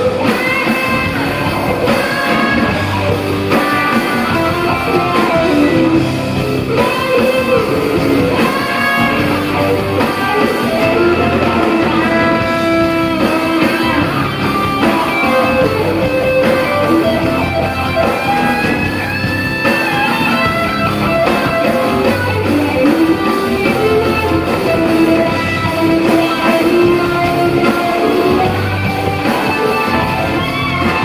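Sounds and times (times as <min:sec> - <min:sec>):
electric guitar sliding lead notes: 0:00.0 - 0:31.0
live rock band: 0:00.0 - 0:31.0.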